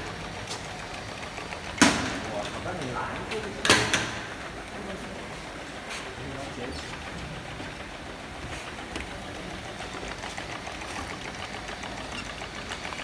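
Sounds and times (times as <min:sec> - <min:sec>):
steady mechanical noise: 0:00.0 - 0:13.0.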